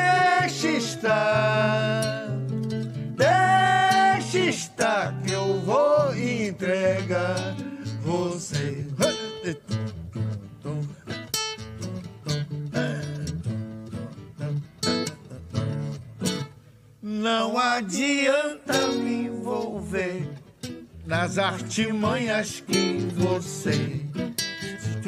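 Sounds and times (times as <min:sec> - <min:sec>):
person singing: 0:00.0 - 0:02.4, 0:03.2 - 0:09.7, 0:17.0 - 0:20.4, 0:21.1 - 0:25.0
acoustic guitars strumming: 0:00.0 - 0:25.0.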